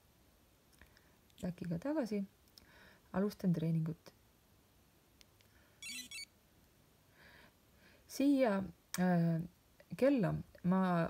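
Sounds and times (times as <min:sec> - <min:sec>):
short electronic chirps: 0:05.8 - 0:06.3.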